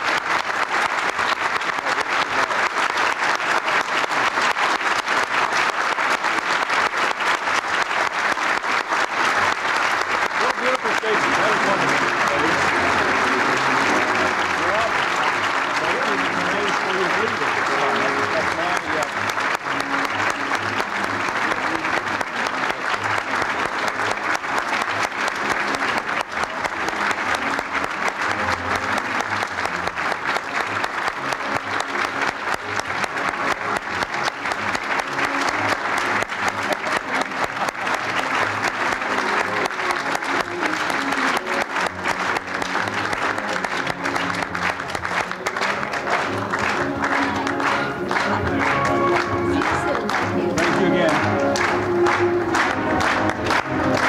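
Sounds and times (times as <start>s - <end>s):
audience applauding: 0.0s - 54.0s
music playing: 0.0s - 54.0s
crowd voices: 9.1s - 54.0s.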